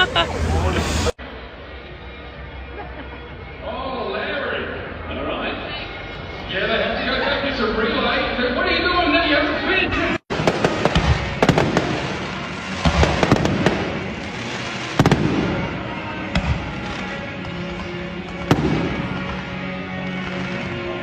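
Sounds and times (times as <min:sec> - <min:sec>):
music playing: 0:00.0 - 0:21.0
fireworks bangs and crackling: 0:10.3 - 0:21.0.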